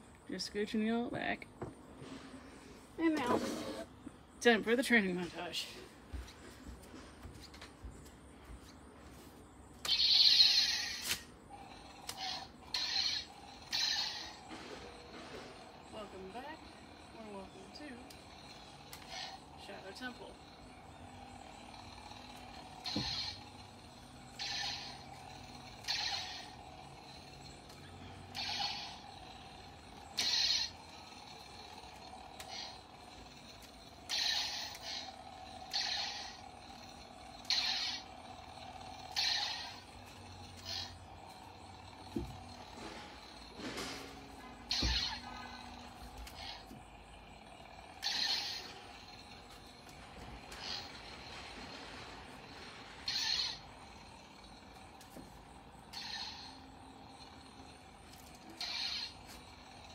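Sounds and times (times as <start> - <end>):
toy lightsaber humming: 0.0 - 59.9
lightsaber swing hiss: 9.8 - 16.5, 21.4 - 56.8, 57.4 - 59.8.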